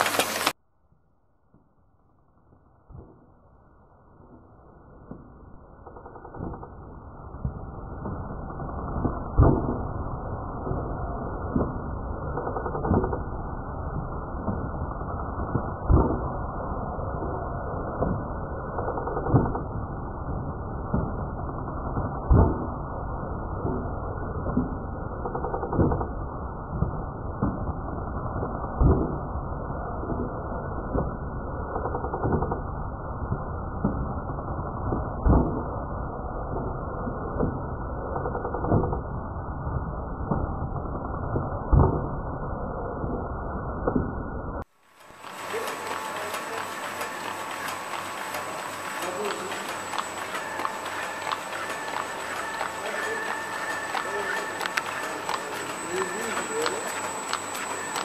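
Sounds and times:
machine hum with high whine: 0.0 - 58.0
machine clattering: 45.0 - 58.0.

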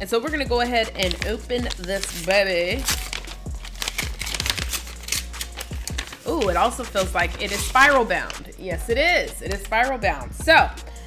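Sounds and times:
paper envelope tearing and crumpling: 1.0 - 8.4.

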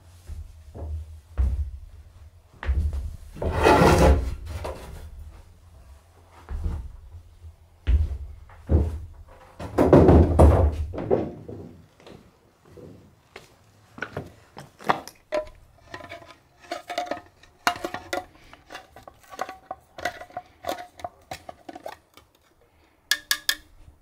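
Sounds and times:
wooden panels knocking and thudding: 7.9 - 11.8
wooden panels scraping on stone: 14.8 - 23.8.

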